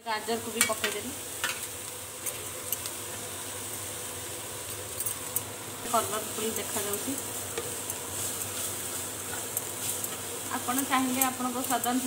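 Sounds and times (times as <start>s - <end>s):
vegetables sizzling in oil: 0.0s - 12.0s.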